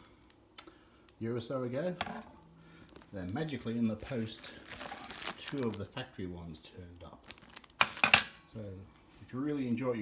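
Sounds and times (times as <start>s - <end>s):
plastic packaging crinkling: 2.7s - 8.4s.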